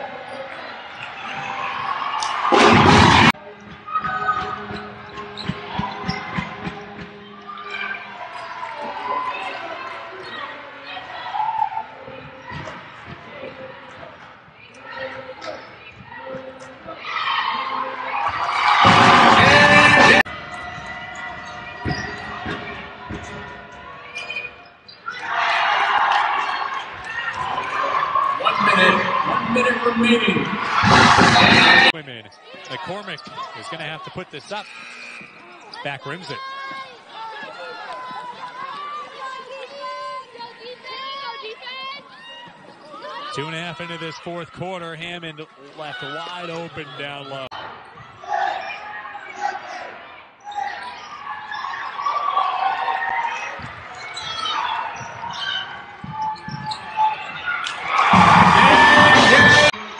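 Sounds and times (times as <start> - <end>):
crowd cheering: 0.0 - 13.8, 14.8 - 45.0, 45.8 - 59.9
crowd chatter: 0.0 - 59.9.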